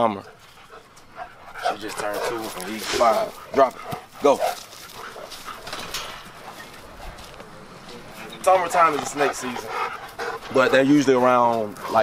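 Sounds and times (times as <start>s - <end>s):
dog paws scuffing dry leaves: 1.7s - 12.0s.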